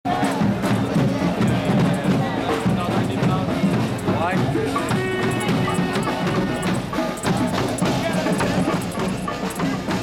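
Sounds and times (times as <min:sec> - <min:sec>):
crowd voices: 0:00.1 - 0:10.0
music: 0:00.1 - 0:10.0
rapid percussion strokes: 0:00.1 - 0:10.0.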